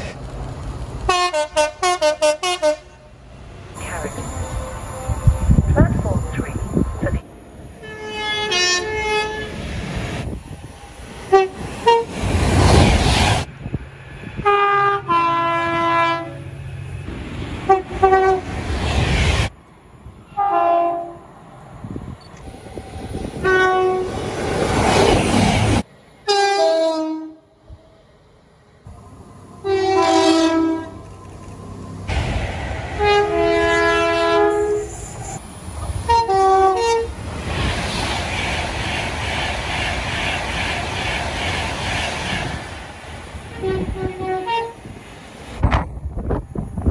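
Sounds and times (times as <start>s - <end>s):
trains rushing past: 0.0s - 46.9s
train two-tone horns: 1.1s - 3.1s, 3.8s - 6.6s, 7.8s - 9.6s, 11.3s - 12.1s, 14.4s - 16.5s, 17.7s - 18.5s, 20.3s - 21.2s, 23.4s - 24.2s, 26.3s - 27.5s, 29.6s - 31.0s, 33.0s - 35.1s, 36.1s - 37.1s, 43.5s - 44.9s.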